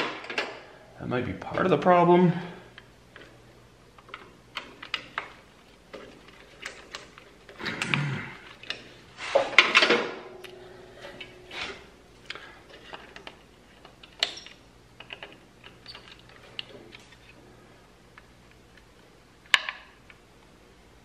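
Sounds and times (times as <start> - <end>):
clicks and rattles of wires and tools: 0.0 - 0.6, 2.7 - 17.4.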